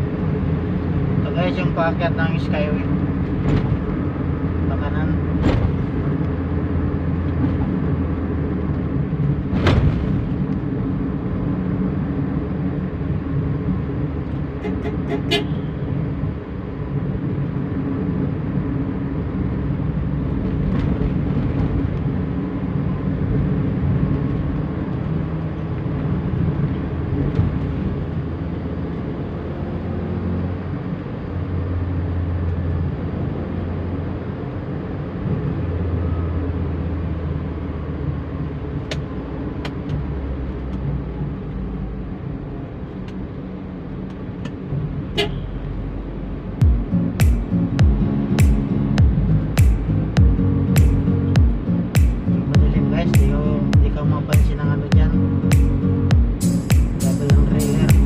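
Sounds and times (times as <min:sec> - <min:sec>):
vehicle engine and tyres drone: 0:00.0 - 0:58.0.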